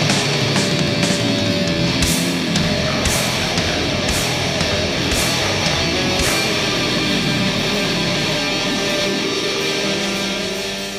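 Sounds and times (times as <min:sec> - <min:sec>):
distorted electric guitar chords: 0:00.0 - 0:10.9
drum and cymbal hit: 0:00.0 - 0:10.9.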